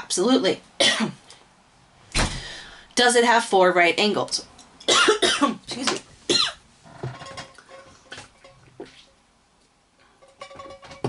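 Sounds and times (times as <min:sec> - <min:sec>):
person coughing: 0:04.9 - 0:06.6.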